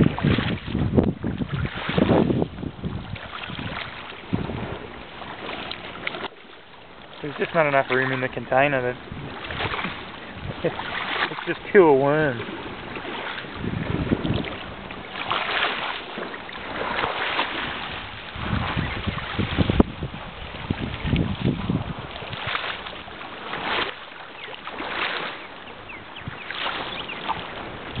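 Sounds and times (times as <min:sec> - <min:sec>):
wind buffeting microphone: 0:00.0 - 0:06.3, 0:07.2 - 0:28.0.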